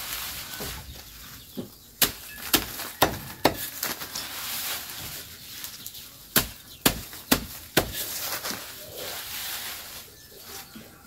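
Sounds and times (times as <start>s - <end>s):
machete chopping grass on wood: 1.6s - 4.2s, 6.3s - 8.6s.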